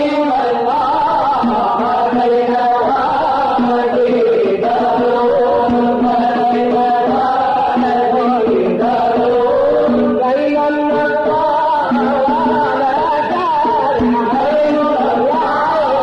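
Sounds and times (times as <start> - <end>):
ornamented vocal melody: 0.0 - 16.0.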